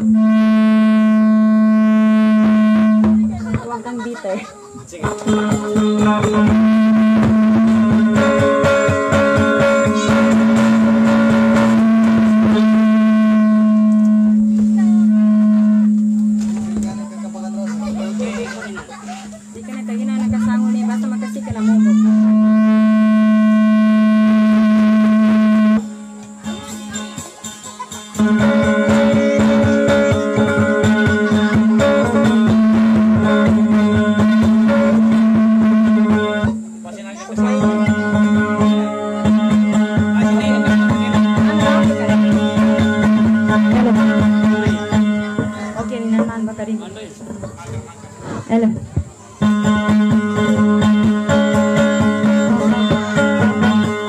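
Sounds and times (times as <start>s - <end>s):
long held musical note: 0.0s - 3.4s, 5.1s - 17.6s, 20.4s - 46.6s, 49.4s - 54.0s
loud electronic hum: 0.0s - 4.0s, 4.8s - 47.3s, 48.5s - 54.0s.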